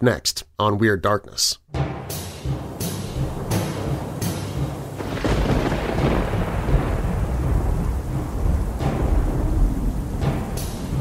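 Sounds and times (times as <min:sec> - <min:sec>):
low rumble: 0:02.5 - 0:11.0
sharp thunder crack: 0:03.1 - 0:11.0
thunder clap rolling: 0:03.2 - 0:11.0
rain: 0:03.4 - 0:11.0.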